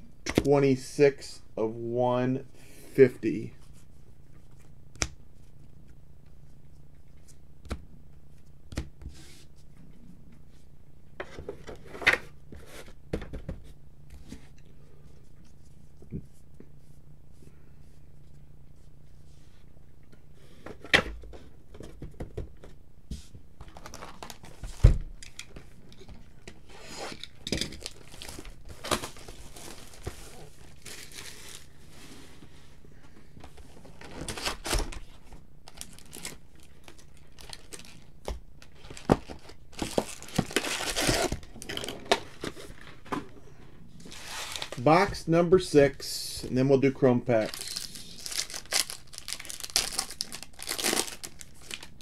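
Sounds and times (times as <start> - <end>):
wrappers tearing and crinkling: 23.6 - 24.8, 27.0 - 31.7, 34.0 - 35.0, 35.6 - 42.4, 44.1 - 44.8, 47.4 - 52.0.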